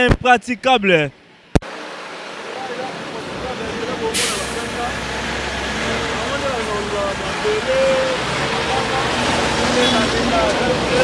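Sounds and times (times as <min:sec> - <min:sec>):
diesel truck engine approaching: 0:01.7 - 0:11.0
air brakes hissing: 0:04.0 - 0:05.0.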